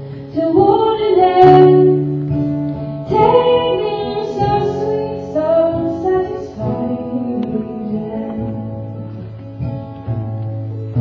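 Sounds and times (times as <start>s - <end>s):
acoustic guitar: 0.0s - 11.0s
woman singing folk song: 0.0s - 11.0s.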